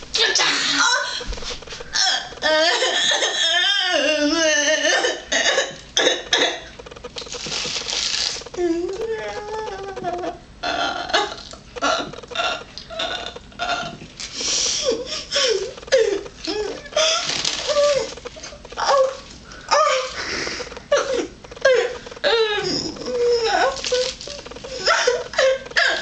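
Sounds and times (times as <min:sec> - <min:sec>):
woman sobbing: 0:01.9 - 0:05.8, 0:08.6 - 0:26.0
woman crying: 0:01.9 - 0:06.4, 0:08.6 - 0:14.0, 0:14.6 - 0:26.0.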